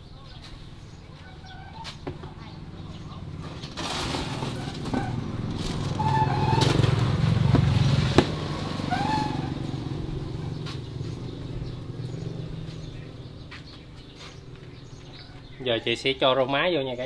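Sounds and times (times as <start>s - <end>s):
vehicle engine drone passing by: 1.5s - 15.6s.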